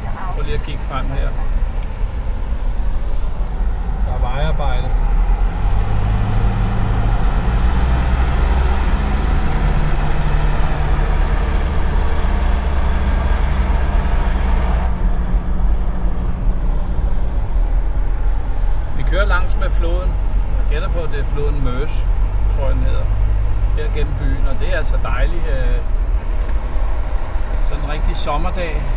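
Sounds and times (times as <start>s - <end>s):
car engine drone: 0.0s - 28.9s
road and tyre noise: 0.0s - 28.9s.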